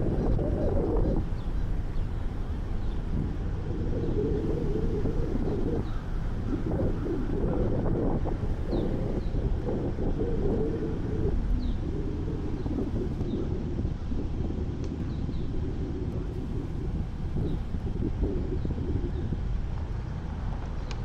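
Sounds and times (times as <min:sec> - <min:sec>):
vehicle running on road: 0:00.0 - 0:21.0
wind buffeting microphone: 0:00.0 - 0:21.0.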